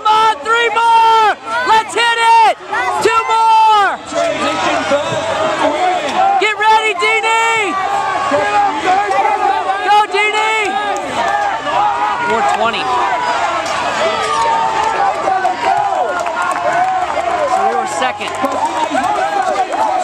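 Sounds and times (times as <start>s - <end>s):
crowd hubbub: 0.0s - 20.0s
people shouting encouragement: 0.0s - 20.0s.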